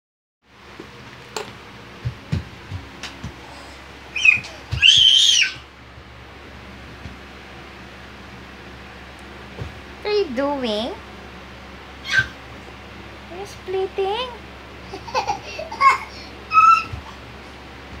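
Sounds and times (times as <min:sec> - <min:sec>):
toddler squealing: 0:04.1 - 0:05.6, 0:12.0 - 0:12.4, 0:15.8 - 0:17.0.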